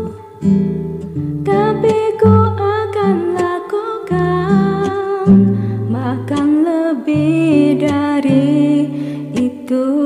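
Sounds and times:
woman singing softly: 0:00.0 - 0:00.5, 0:01.4 - 0:10.0
acoustic guitar and bass backing: 0:00.0 - 0:09.7.

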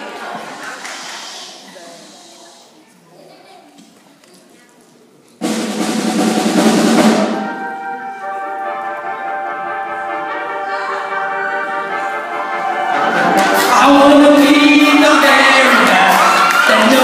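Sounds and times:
drum roll and cymbals: 0:05.4 - 0:07.9.

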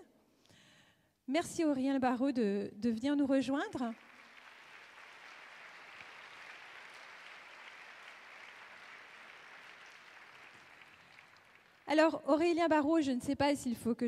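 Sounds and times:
faint audience applause: 0:03.8 - 0:11.9.

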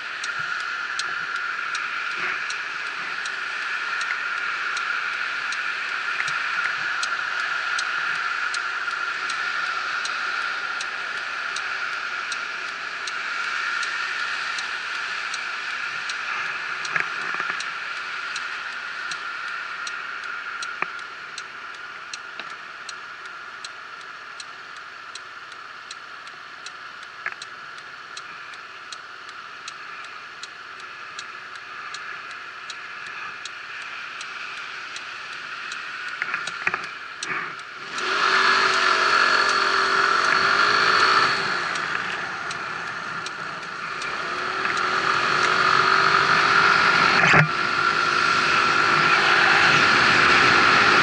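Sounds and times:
turn indicator ticking: 0:00.0 - 0:51.0.

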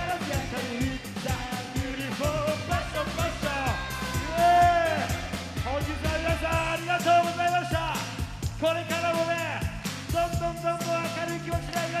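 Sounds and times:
man singing into a microphone: 0:00.0 - 0:03.8
backing music with fast beat: 0:00.0 - 0:12.0.

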